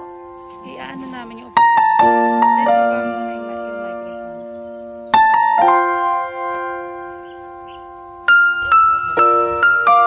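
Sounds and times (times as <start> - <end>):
piano chord: 0.0 - 10.0.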